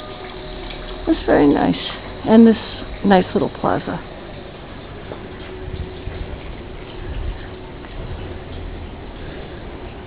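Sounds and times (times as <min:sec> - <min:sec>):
faint steady hum: 0:00.0 - 0:10.0
irregular low rumble: 0:00.5 - 0:10.0.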